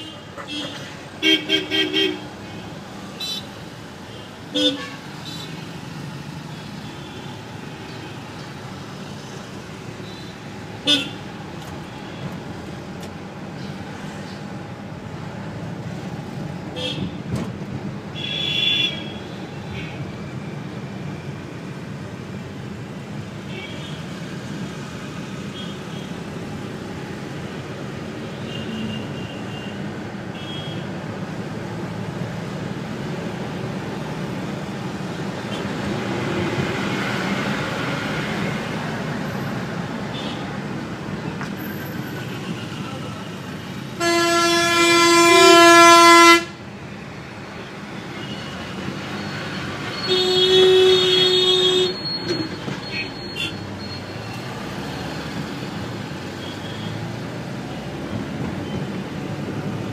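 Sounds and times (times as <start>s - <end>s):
engine and road noise: 0.0s - 59.9s
long loud horn blast: 44.0s - 46.6s.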